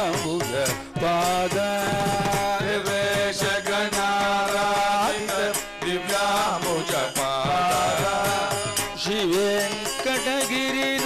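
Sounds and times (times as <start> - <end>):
men singing devotional song: 0.0 - 11.0.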